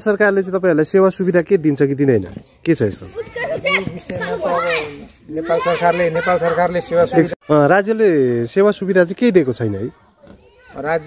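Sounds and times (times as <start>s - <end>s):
voices talking over one another: 0.0s - 11.0s
child's voice: 2.4s - 7.4s, 9.9s - 11.0s.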